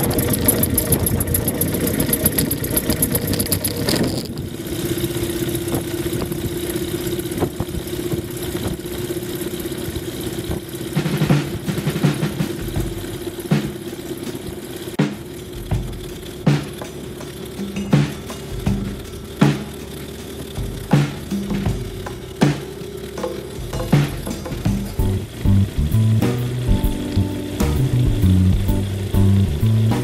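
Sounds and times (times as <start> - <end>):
aircraft engine and propeller running: 0.0 - 30.0.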